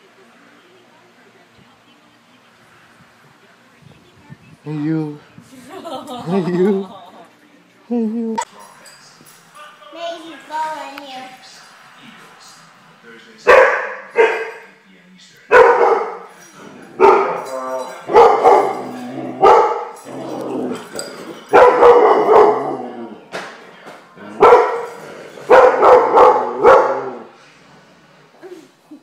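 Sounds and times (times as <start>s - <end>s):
large dog barking loudly: 13.5s - 14.5s, 15.5s - 16.3s, 17.0s - 17.5s, 18.1s - 20.0s, 21.5s - 23.0s, 24.4s - 24.9s, 25.5s - 27.3s.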